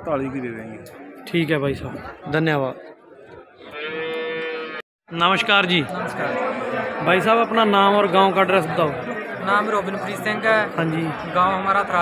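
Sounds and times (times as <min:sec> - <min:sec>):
cow mooing: 0:03.7 - 0:04.8.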